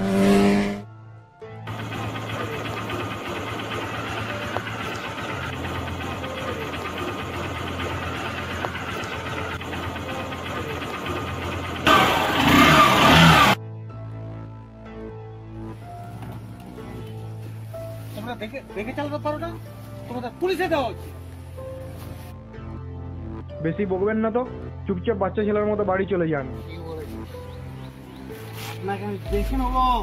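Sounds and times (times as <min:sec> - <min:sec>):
motorcycle engine revving: 0:00.0 - 0:00.9, 0:01.7 - 0:13.6
background music with drone: 0:00.0 - 0:30.0.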